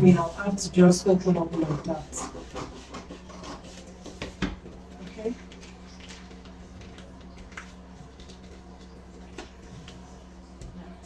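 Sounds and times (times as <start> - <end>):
paper rustling on table: 1.5 - 8.7.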